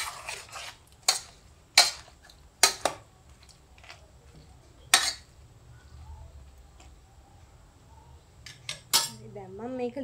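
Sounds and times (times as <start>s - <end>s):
metal pot clinks: 8.5s - 9.2s.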